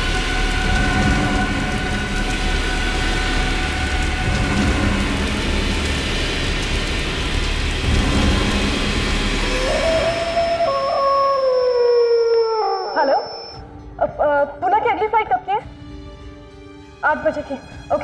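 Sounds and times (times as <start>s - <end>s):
fire roaring: 0.0s - 12.6s
long howl sliding down in pitch: 9.4s - 13.6s.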